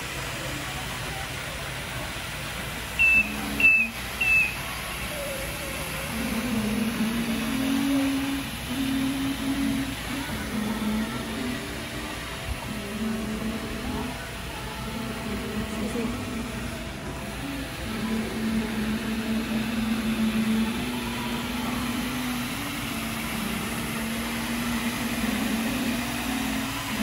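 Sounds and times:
floor scrubber machine hum: 0:00.0 - 0:27.0
store background noise: 0:00.0 - 0:27.0
short high beeps: 0:03.0 - 0:04.6.

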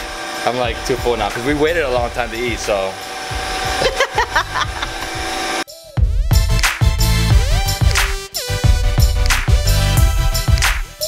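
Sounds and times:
bass-heavy hip hop beat: 0:00.7 - 0:02.7, 0:03.3 - 0:11.0.

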